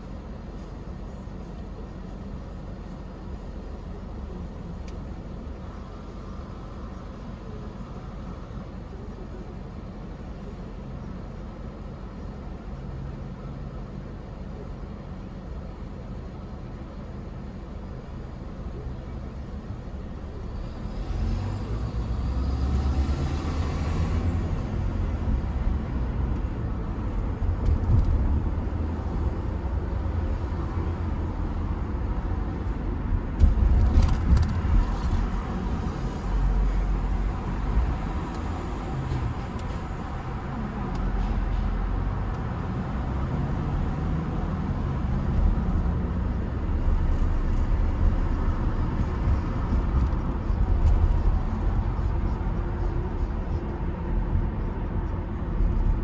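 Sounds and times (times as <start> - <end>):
car accelerating with road rumble: 0.0 - 56.0.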